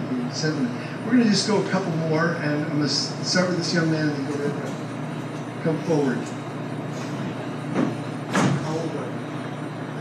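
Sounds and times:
room murmur: 0.0 - 10.0.

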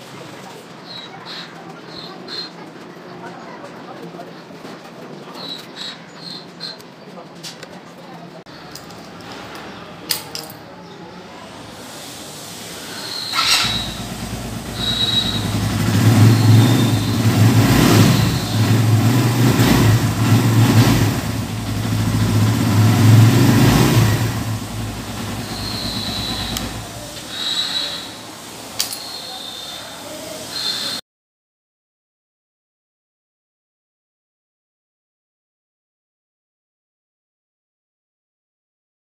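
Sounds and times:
motorcycle engine revving: 13.3 - 28.2.

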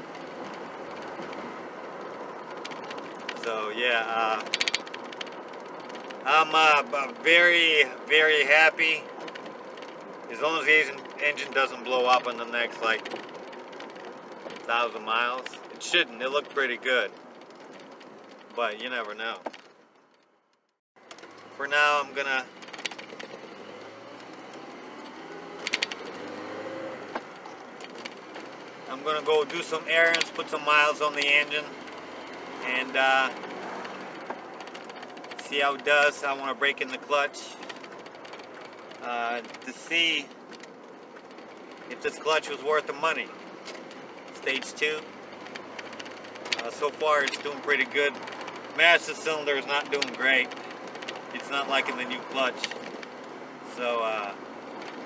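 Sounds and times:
cluster of clicks: 0.0 - 21.6, 22.2 - 55.0
pickup engine running: 0.0 - 55.0
road and tyre noise: 0.0 - 55.0
truck engine revving: 21.4 - 36.2.

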